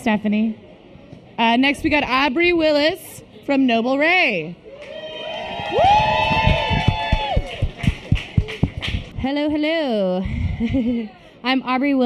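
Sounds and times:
people whooping: 4.7 - 8.4
person cheering woo: 4.9 - 7.8
hand clapping: 6.3 - 9.2.

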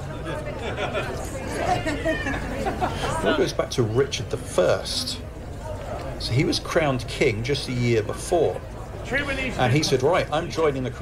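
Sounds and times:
chatter of passers-by: 0.0 - 11.0.

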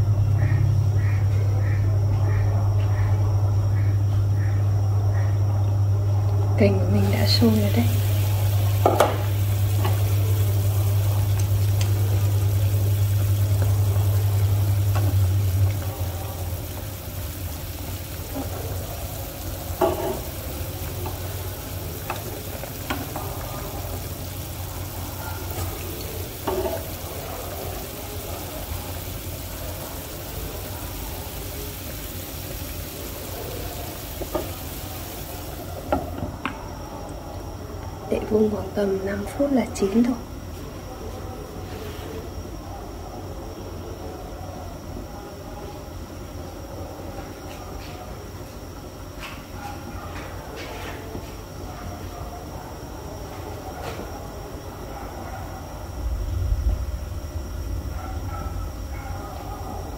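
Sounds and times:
low steady hum: 0.0 - 40.4, 54.9 - 59.9
broth boiling and bubbling: 0.0 - 40.5, 50.3 - 59.9.

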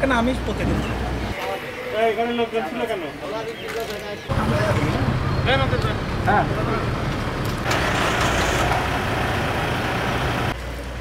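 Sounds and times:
motor vehicle running: 4.3 - 11.0.

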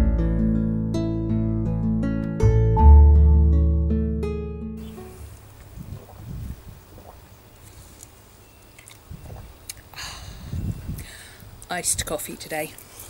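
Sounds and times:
plucked-string background music: 0.0 - 5.2
outdoor background noise: 4.8 - 13.0.

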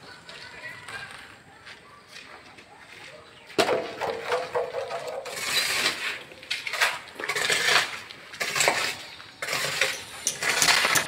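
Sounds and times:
metal tools scraping and clinking: 4.9 - 11.0.

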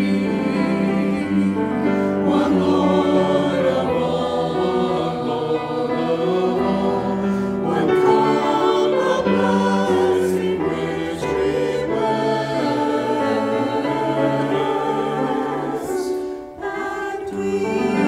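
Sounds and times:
choir singing a hymn: 0.0 - 18.0
piano accompaniment: 0.0 - 18.0.

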